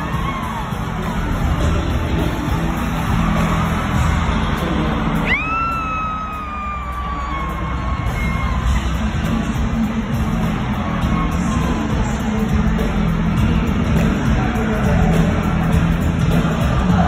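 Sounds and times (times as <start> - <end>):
loud live concert music: 0.0 - 17.0.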